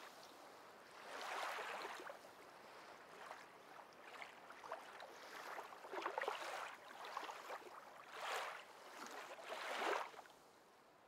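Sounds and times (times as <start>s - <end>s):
water lapping and splashing: 0.8s - 10.4s.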